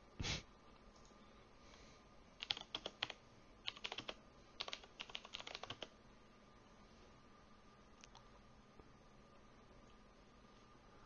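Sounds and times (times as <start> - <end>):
typing on computer keyboard: 2.4 - 5.9.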